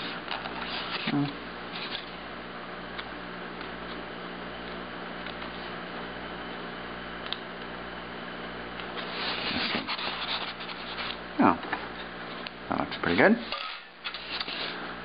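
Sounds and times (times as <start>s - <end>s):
steady low hum: 0.0s - 15.0s
fingers scraping styrofoam: 9.0s - 11.2s.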